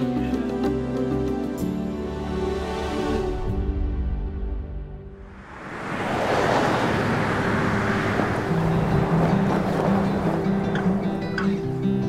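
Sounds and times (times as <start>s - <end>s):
low music notes: 0.0s - 5.1s
loud rushing noise: 5.1s - 10.5s.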